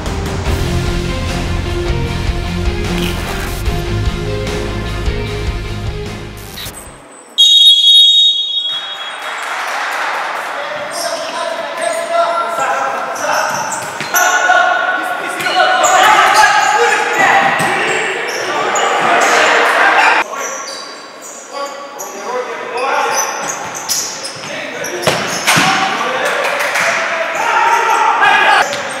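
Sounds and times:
title music: 2.9s - 4.3s
loud high whistle blast: 7.4s - 9.3s
players shouting: 26.8s - 28.8s.

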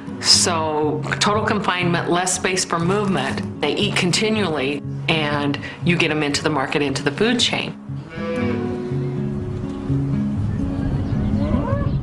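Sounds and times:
background music low notes: 0.0s - 12.0s
cattle mooing: 8.0s - 9.3s.

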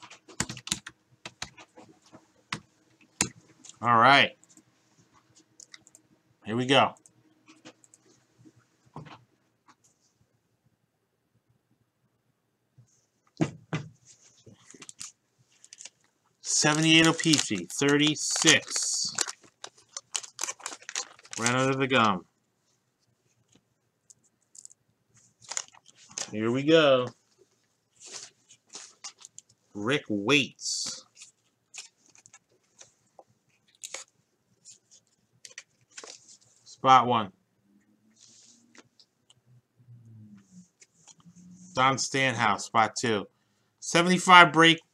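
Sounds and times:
wax wrapper crinkling: 14.6s - 22.2s, 23.4s - 26.4s, 27.9s - 29.6s, 30.8s - 36.6s.

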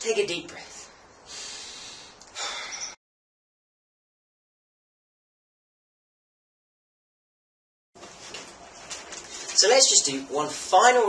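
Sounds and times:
man breathing deeply: 1.2s - 3.0s.

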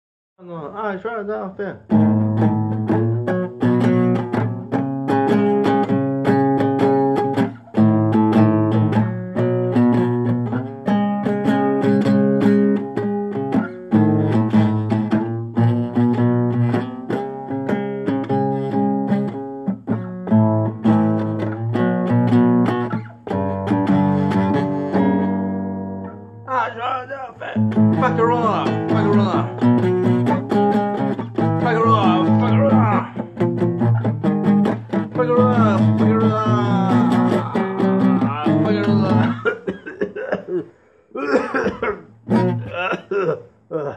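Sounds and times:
punk guitar strumming chords: 1.9s - 39.8s, 41.7s - 42.7s
person singing: 26.5s - 30.5s, 31.4s - 33.4s, 34.9s - 41.4s.

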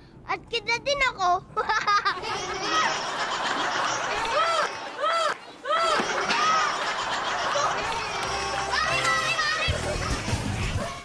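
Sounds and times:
children shouting: 2.2s - 11.0s.

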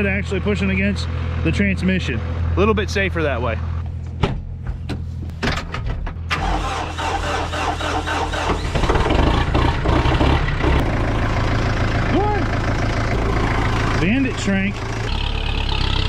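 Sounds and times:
tractor engine starting and running: 0.0s - 16.0s.

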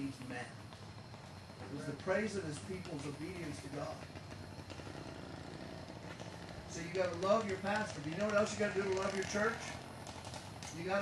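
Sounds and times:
engine running with low pulse: 0.0s - 11.0s.

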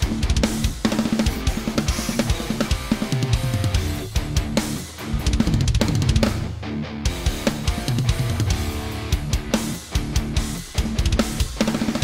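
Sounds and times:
electric guitar riff: 0.0s - 12.0s
electronic drum kit: 0.0s - 12.0s.

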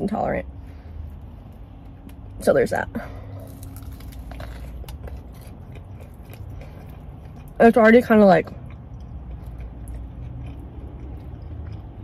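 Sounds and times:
low steady hum: 0.0s - 12.0s
person chewing crunchy food: 3.3s - 12.0s.

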